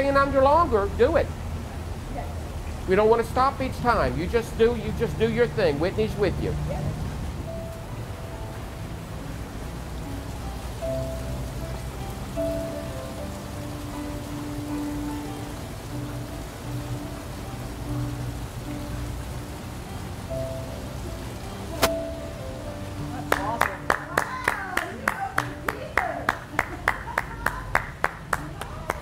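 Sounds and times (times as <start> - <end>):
rain-like water hiss: 0.0 - 29.0
soft music of held chords: 3.8 - 27.0.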